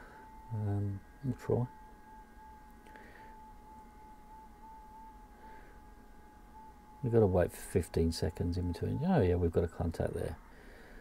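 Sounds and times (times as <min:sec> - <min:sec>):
low hiss: 0:00.0 - 0:11.0
digital signal tone: 0:06.6 - 0:10.5.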